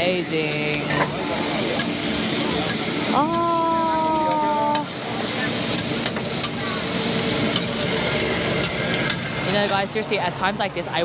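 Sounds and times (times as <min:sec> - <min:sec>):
rice sizzling on a griddle: 0:00.0 - 0:10.6.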